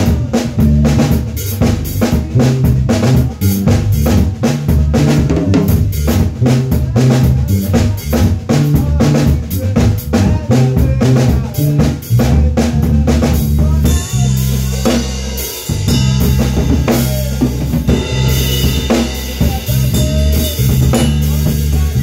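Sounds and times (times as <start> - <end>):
drum kit beat: 0.0 - 22.0
electric bass guitar: 0.0 - 22.0.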